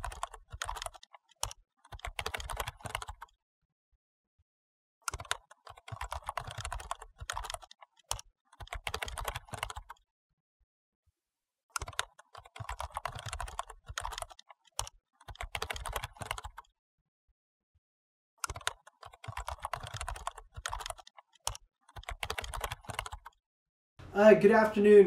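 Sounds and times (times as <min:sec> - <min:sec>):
rapid keyboard typing: 0:00.0 - 0:03.4, 0:05.1 - 0:10.0, 0:11.8 - 0:16.7, 0:18.4 - 0:23.4.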